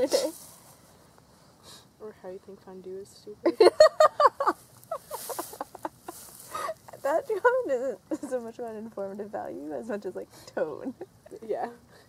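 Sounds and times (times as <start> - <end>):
breath: 1.3 - 1.9, 6.5 - 6.8
person laughing: 3.5 - 6.8.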